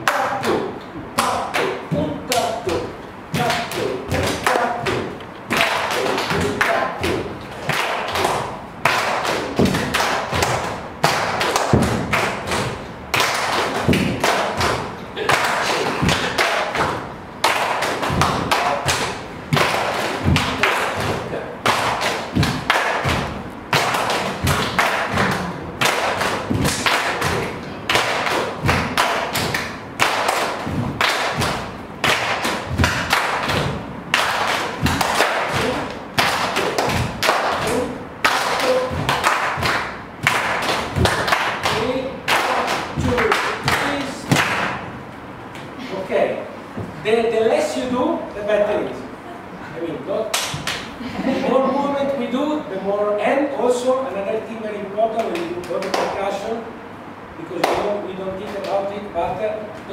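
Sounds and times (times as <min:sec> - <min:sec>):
hands clapping: 0:03.4 - 0:44.9, 0:50.3 - 0:51.0, 0:55.1 - 0:56.3, 0:57.6 - 0:58.8
bare feet stamping on floor: 0:19.5 - 0:21.2, 0:28.0 - 0:35.3.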